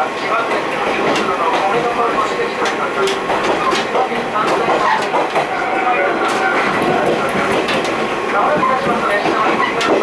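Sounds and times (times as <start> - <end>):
train running noise: 0.0 - 10.0.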